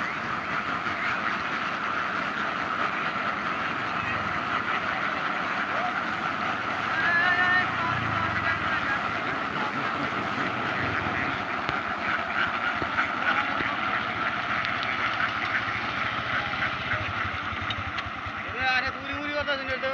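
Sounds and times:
ducks quacking: 0.0s - 19.9s.

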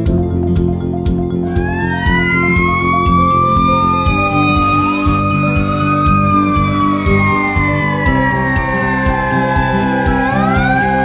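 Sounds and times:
background music: 0.0s - 11.0s
fire truck siren wailing: 1.4s - 11.0s
second siren tone: 1.5s - 11.0s.

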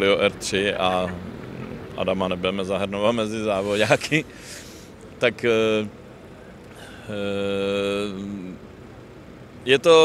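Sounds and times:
man's drawn-out hesitation sound: 0.0s - 6.1s.

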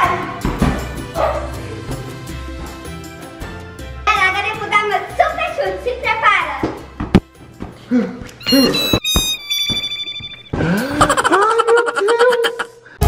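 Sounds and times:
falling electronic tones: 8.4s - 11.0s.

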